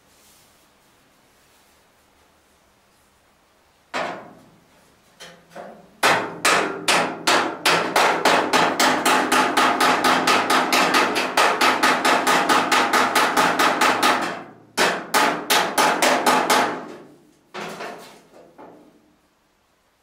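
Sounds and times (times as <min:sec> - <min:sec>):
hammer blows on sheet steel: 0:05.6 - 0:18.0.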